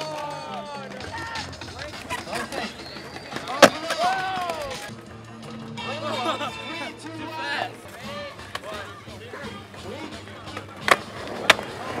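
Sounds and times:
skateboard impacts on concrete: 0:00.0 - 0:04.9, 0:07.9 - 0:12.0
crowd voices: 0:00.0 - 0:12.0.

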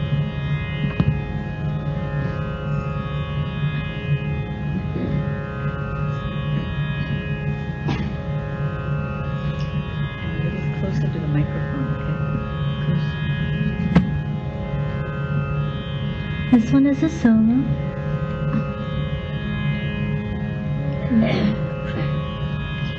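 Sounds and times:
drone music with plucked strings: 0:00.0 - 0:22.9.

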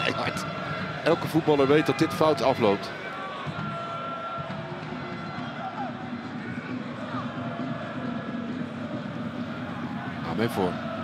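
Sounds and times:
crowd chanting: 0:00.0 - 0:11.0
stadium crowd voices: 0:00.0 - 0:11.0.

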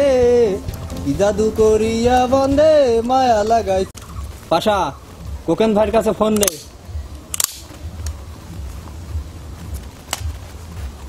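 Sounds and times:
steady low rumble: 0:00.0 - 0:06.0, 0:06.7 - 0:11.0
sharp clicks: 0:06.3 - 0:06.7, 0:07.3 - 0:08.2.

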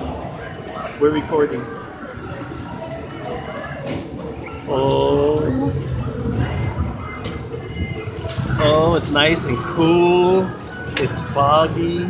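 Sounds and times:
faint background voices: 0:00.0 - 0:12.0
ferris wheel rumbling: 0:00.0 - 0:12.0.

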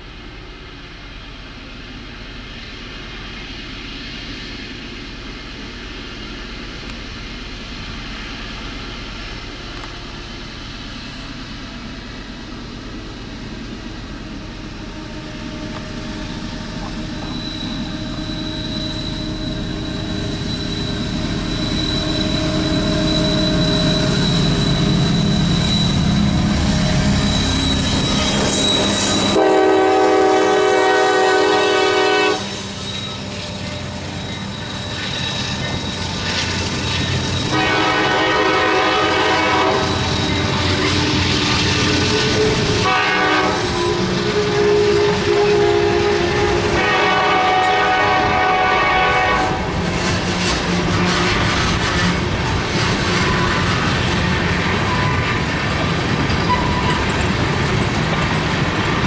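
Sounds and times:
diesel locomotives rumbling: 0:00.0 - 0:59.0
train wheels on rails: 0:00.0 - 0:59.0
locomotive horn blasts: 0:29.2 - 0:32.6, 0:37.5 - 0:40.9, 0:42.3 - 0:49.7, 0:50.4 - 0:52.3.

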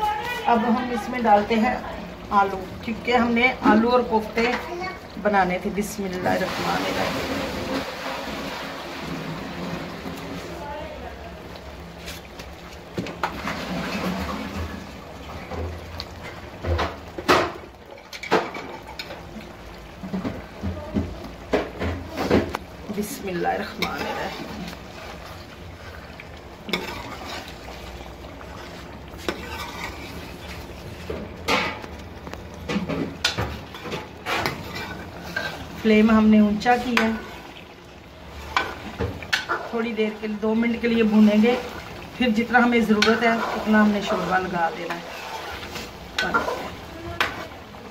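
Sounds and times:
ladle stirring curry in a pot: 0:23.1 - 0:35.9, 0:42.7 - 0:47.8.

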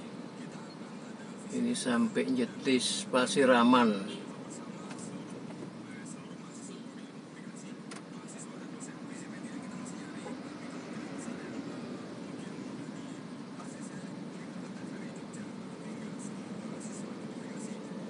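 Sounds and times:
faint indistinct voices: 0:00.0 - 0:01.6, 0:04.1 - 0:18.0.

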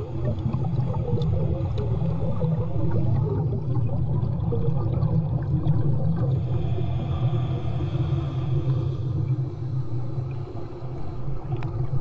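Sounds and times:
underwater rumble of water: 0:00.0 - 0:12.0.

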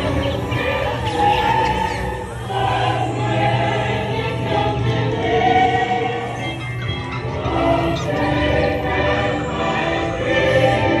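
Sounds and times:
choir singing sustained notes: 0:00.0 - 0:11.0
musical accompaniment: 0:00.0 - 0:11.0.

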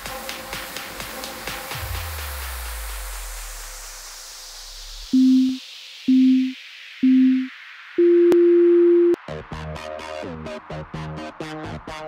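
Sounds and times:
electronic music: 0:05.2 - 0:09.2
timer beeps: 0:05.2 - 0:09.2.

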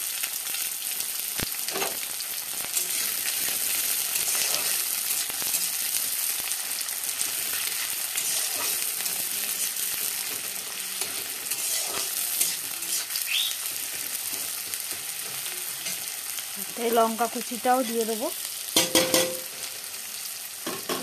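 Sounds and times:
onions sizzling in hot oil: 0:00.0 - 0:21.0
metal spatula scraping a pan: 0:02.7 - 0:06.2, 0:07.2 - 0:16.2.

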